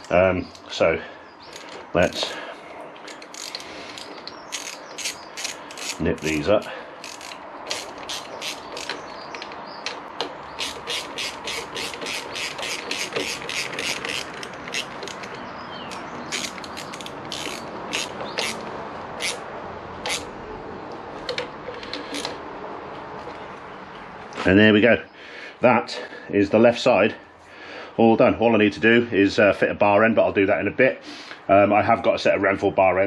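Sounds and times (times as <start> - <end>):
hand ratchet clicking: 3.1 - 9.5, 10.6 - 19.4, 20.0 - 20.3, 21.3 - 22.4.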